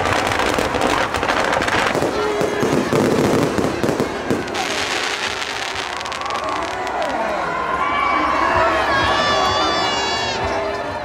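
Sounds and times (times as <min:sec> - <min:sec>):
fireworks bangs and crackles: 0:00.0 - 0:07.3
crowd voices: 0:00.0 - 0:11.0.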